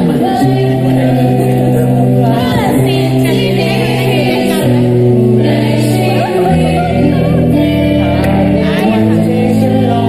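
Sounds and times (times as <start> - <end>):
electric guitar: 0.0 - 10.0
several voices singing together: 0.0 - 10.0.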